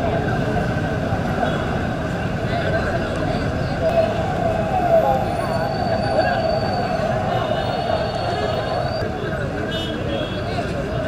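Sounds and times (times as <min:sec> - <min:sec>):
crowd voices: 0:00.0 - 0:11.0
traffic rumble: 0:00.0 - 0:11.0.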